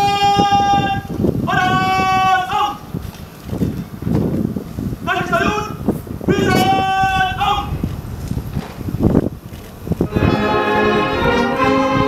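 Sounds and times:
shouted word of command: 0.0 - 2.9, 5.0 - 7.8
boots striking parade ground: 7.9 - 10.2.

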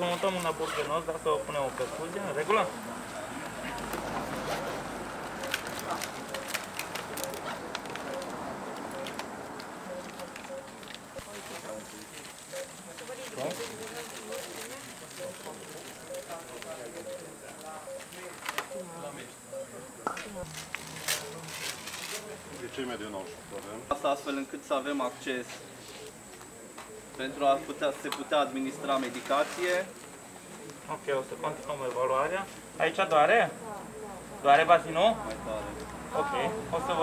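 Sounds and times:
background murmur: 0.0 - 37.0
low indistinct voices talking: 0.0 - 37.0
medical equipment rustling and clicking: 5.4 - 18.8, 20.3 - 22.8
rustling hiss: 24.3 - 33.2.

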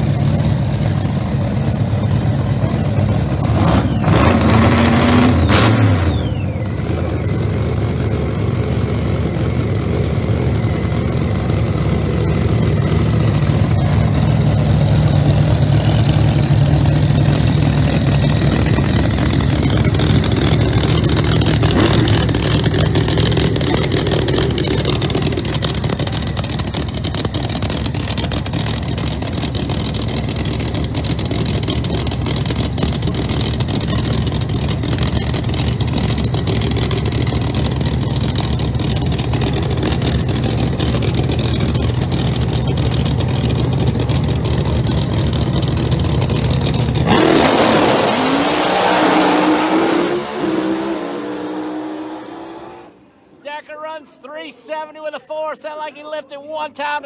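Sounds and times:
drag car engines idling: 0.0 - 48.3.

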